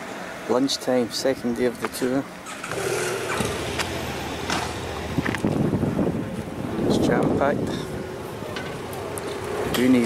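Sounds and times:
coach engine and road rumble: 0.0s - 10.0s.

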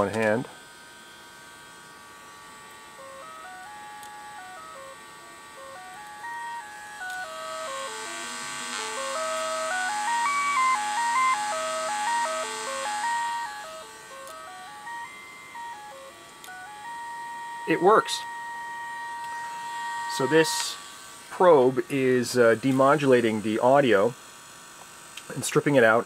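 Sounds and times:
test tone from loudspeaker: 2.9s - 24.1s.

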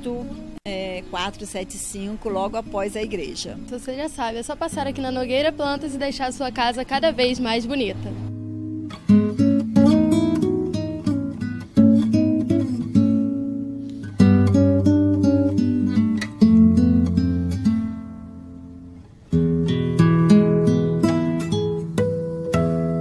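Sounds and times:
plucked acoustic guitar: 2.2s - 23.0s.

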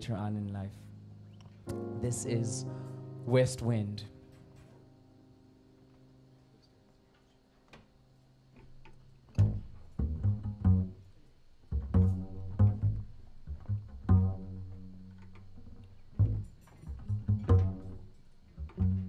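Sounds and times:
double bass plucked notes: 9.3s - 19.0s.

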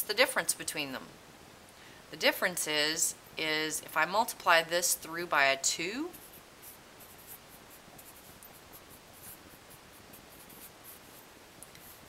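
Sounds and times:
marker writing on paper: 6.1s - 11.2s.

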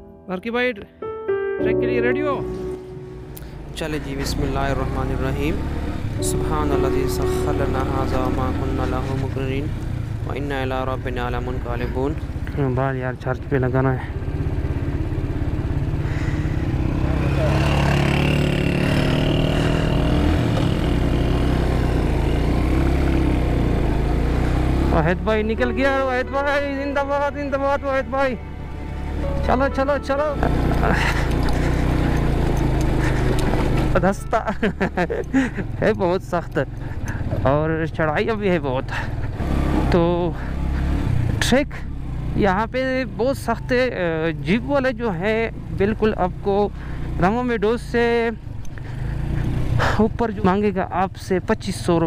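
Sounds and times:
motorcycle engine running: 3.5s - 52.0s
motorcycle engine under load: 13.5s - 25.0s, 30.4s - 37.8s.

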